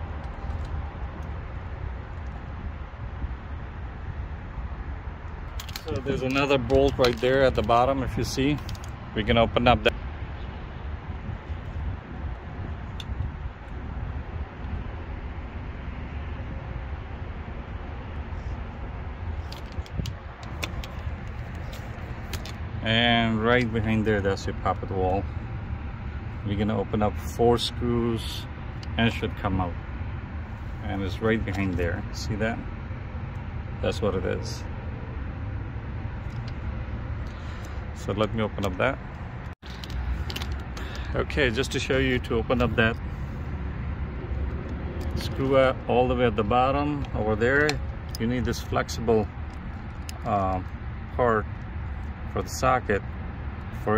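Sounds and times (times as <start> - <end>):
outdoor rumble and hiss: 0.0 - 53.9.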